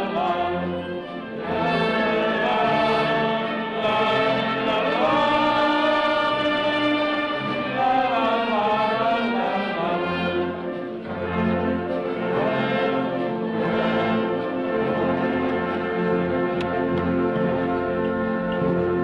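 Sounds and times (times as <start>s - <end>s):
brass wind band playing: 0.0s - 19.0s.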